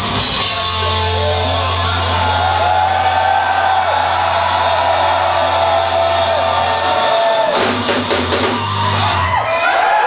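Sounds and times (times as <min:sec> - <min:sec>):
heavy metal band playing live: 0:00.0 - 0:09.4.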